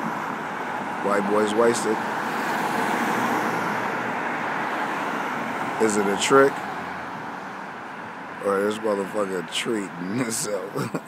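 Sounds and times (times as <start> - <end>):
car passing close by: 0.0 - 8.4
street traffic rushing: 0.0 - 11.0.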